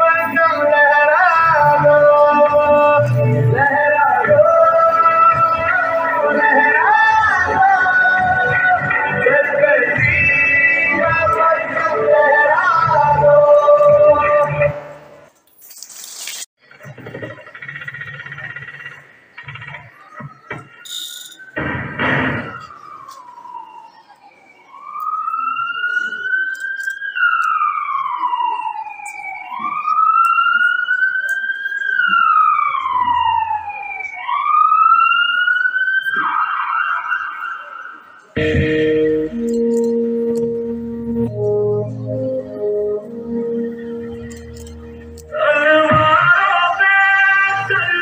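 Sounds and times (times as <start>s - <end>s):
dance music: 0.0s - 14.9s, 38.4s - 48.0s
siren wailing: 0.0s - 15.0s, 17.7s - 48.0s.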